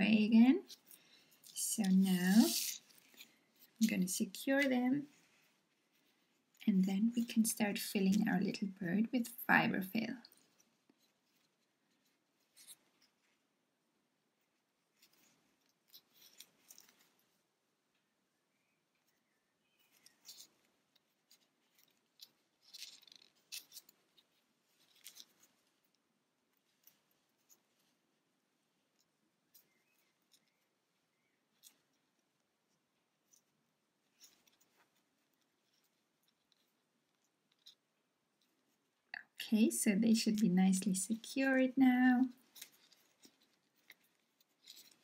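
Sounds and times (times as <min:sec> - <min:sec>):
faint plastic clicks and rustles: 0:00.6 - 0:13.6, 0:14.2 - 0:45.0.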